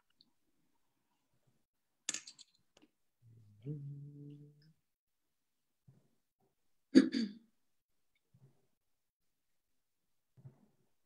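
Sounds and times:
person clearing throat: 7.0 - 7.4.

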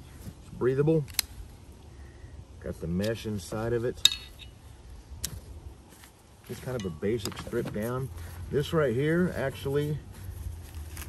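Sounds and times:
metal plate clinking: 6.7 - 7.5.

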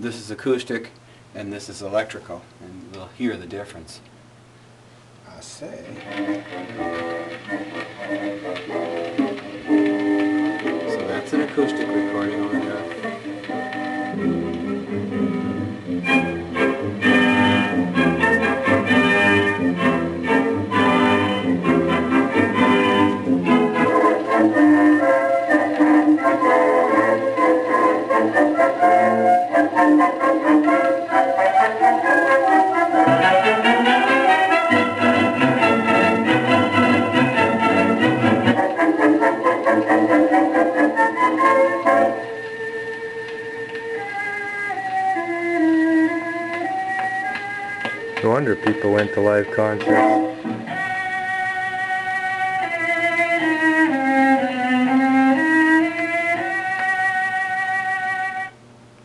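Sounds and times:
old orchestra recording: 5.3 - 58.5.

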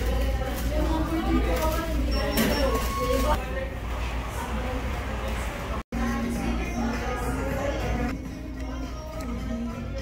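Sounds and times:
people talking in background: 0.0 - 10.0
short beep tones: 2.1 - 3.4.

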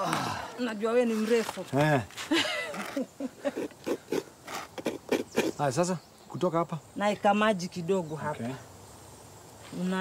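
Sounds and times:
person chuckling: 2.3 - 4.2.

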